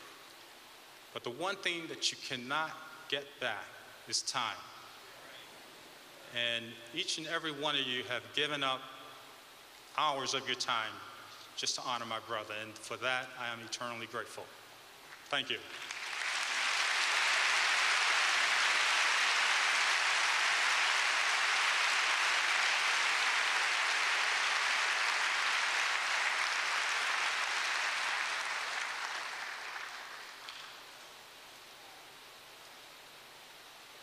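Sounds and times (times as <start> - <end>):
audience applauding: 15.7 - 30.8.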